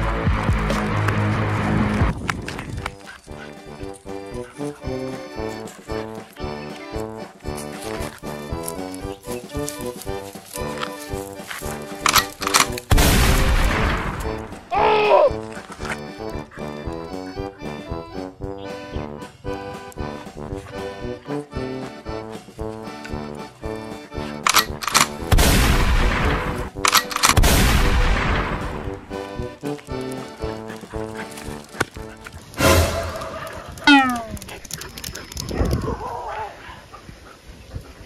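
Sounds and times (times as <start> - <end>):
comedy background music: 0.0 - 34.8
gunfire and explosion effects: 12.1 - 14.5, 24.5 - 29.0.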